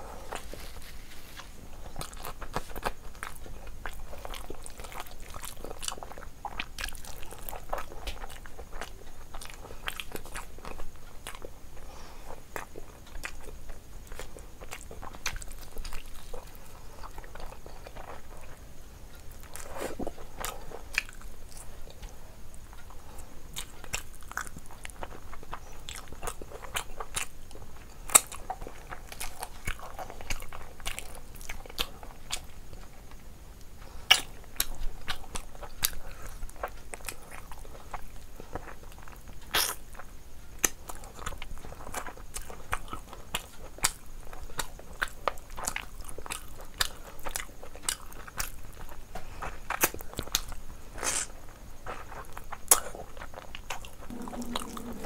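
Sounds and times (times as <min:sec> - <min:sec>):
wet chewing and biting: 0:00.3 - 0:11.5, 0:34.1 - 0:55.0.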